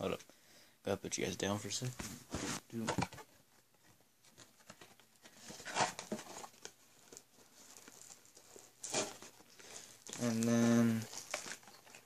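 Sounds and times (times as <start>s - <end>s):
cardboard box rustling and scraping: 5.2s - 6.6s.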